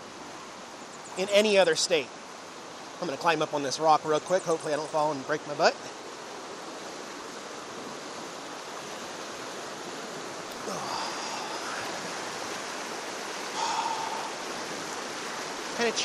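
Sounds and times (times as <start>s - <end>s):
river rapids rushing over rocks: 5.2s - 16.0s
faint higher sounds: 13.4s - 14.8s.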